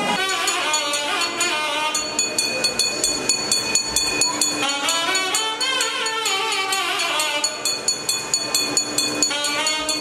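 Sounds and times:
traditional temple music: 0:00.0 - 0:10.0
metal bell rung rapidly: 0:00.1 - 0:10.0.

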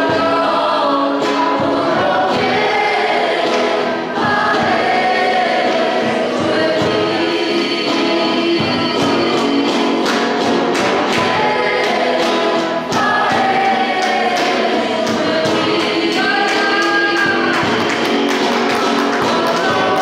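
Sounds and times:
group singing worship song: 0:00.0 - 0:20.0
instrumental accompaniment with beat: 0:00.0 - 0:20.0.

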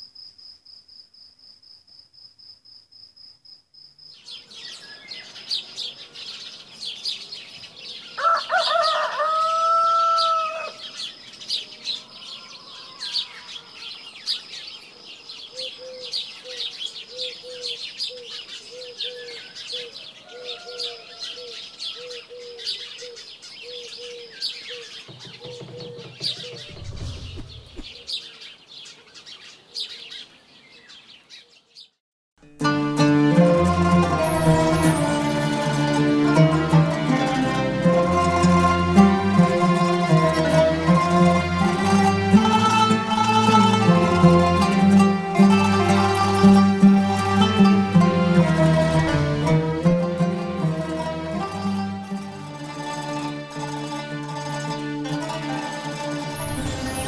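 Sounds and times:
crickets chirping: 0:00.0 - 0:06.8
songbirds chirping: 0:03.9 - 0:32.0, 0:33.0 - 0:57.0
rooster crowing: 0:08.1 - 0:11.0, 0:11.9 - 0:14.0, 0:19.8 - 0:22.3
short low rumble: 0:26.6 - 0:28.1.

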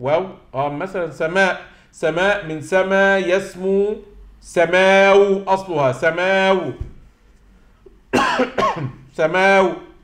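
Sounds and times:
man coughing: 0:08.1 - 0:09.1.

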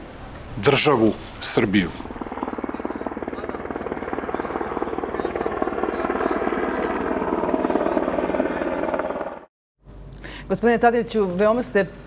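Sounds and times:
helicopter rotor chopping: 0:00.3 - 0:09.5.

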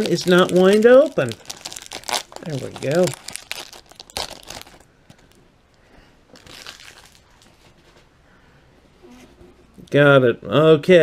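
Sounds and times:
foil wrapper crinkling: 0:00.0 - 0:05.4, 0:06.3 - 0:07.5.

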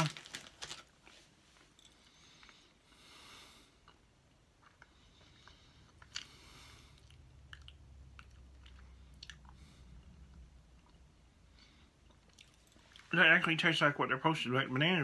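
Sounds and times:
chewing with wet mouth clicks: 0:04.6 - 0:11.1, 0:12.0 - 0:13.1.

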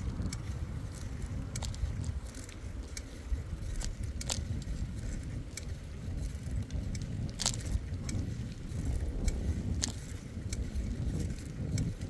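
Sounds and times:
bicycle clicks and rattles: 0:00.0 - 0:12.0
bicycle tyres rumbling on asphalt: 0:00.0 - 0:12.0.

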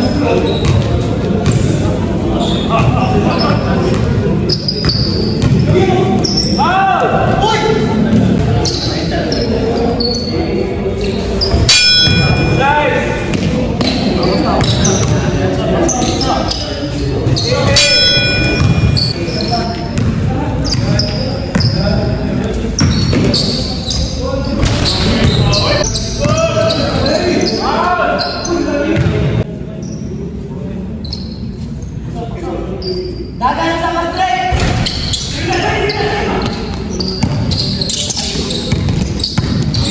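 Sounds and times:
players' voices and shouts: 0:00.0 - 0:29.6, 0:32.3 - 0:38.7
sharp high squeaks: 0:08.6 - 0:13.2, 0:15.9 - 0:19.8, 0:31.0 - 0:31.6, 0:34.8 - 0:39.9
basketball bouncing on gym floor: 0:18.4 - 0:19.2, 0:20.0 - 0:20.9, 0:38.7 - 0:39.9.

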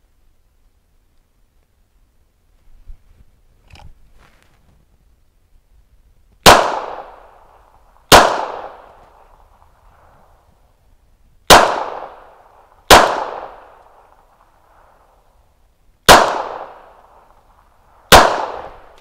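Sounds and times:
pistol shots echoing: 0:06.4 - 0:07.5, 0:08.1 - 0:09.0, 0:11.5 - 0:14.2, 0:16.1 - 0:17.4, 0:18.1 - 0:19.0.

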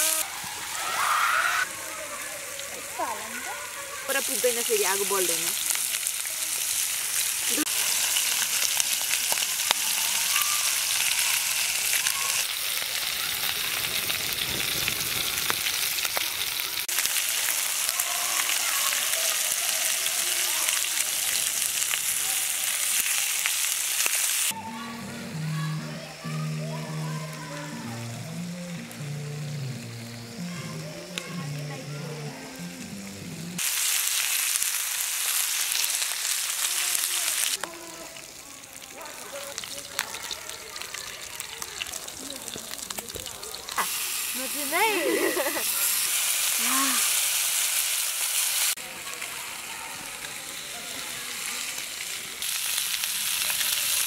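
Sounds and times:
fish sizzling in frying pan: 0:00.0 - 0:24.6, 0:32.6 - 0:54.0
background music with bass line: 0:24.6 - 0:33.6.

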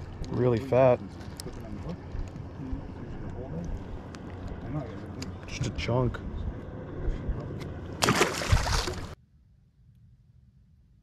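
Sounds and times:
fish splashing in water: 0:08.0 - 0:09.2.

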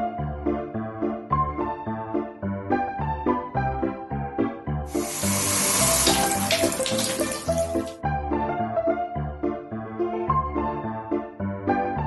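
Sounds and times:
water running from a tap: 0:04.9 - 0:08.0.

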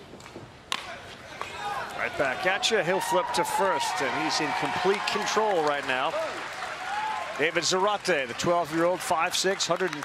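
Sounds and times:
faint ballpark ambience: 0:00.0 - 0:10.0.

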